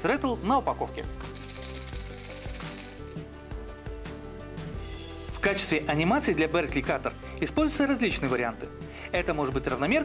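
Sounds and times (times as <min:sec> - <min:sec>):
background music: 0:00.0 - 0:10.0
fishing lure rattling: 0:01.4 - 0:03.3.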